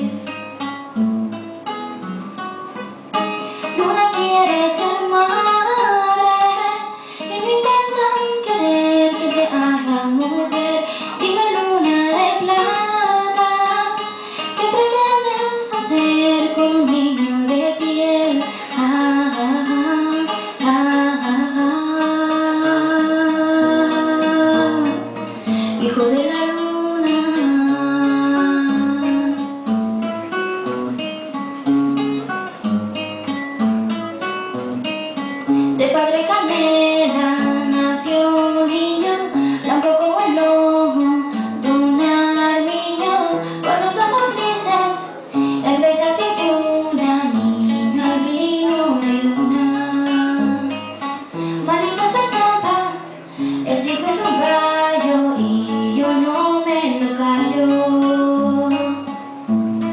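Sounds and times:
girl singing slow song: 0.0 - 1.5, 3.1 - 29.7, 35.4 - 59.9
classical guitar plucked: 0.0 - 59.9.

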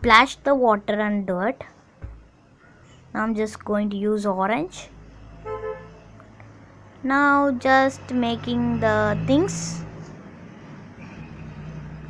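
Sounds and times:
low background hum: 0.0 - 10.8.

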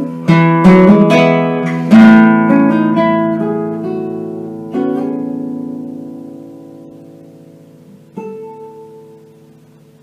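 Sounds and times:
fingerpicked classical guitar: 0.0 - 10.0.

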